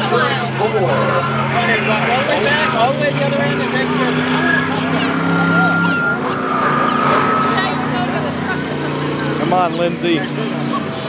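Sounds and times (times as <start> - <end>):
people talking: 0.0 - 11.0
truck engine running: 0.0 - 11.0.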